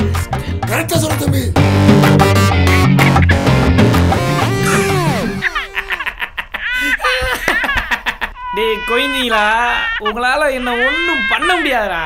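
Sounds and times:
man laughing loudly: 4.3s - 8.4s.

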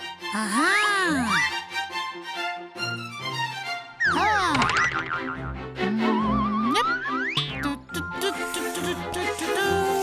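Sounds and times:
children's background music: 4.0s - 10.0s.

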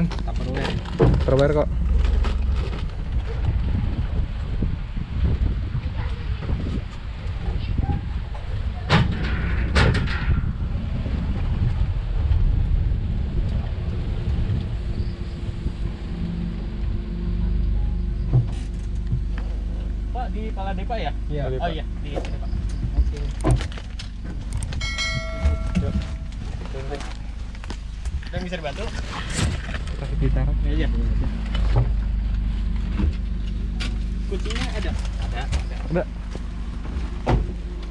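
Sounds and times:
shuttle car rumble: 0.0s - 37.9s
sharp knocks: 24.8s - 26.3s.

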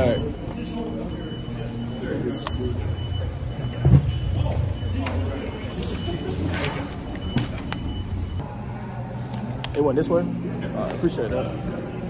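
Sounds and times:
low mechanical hum: 0.0s - 12.0s.

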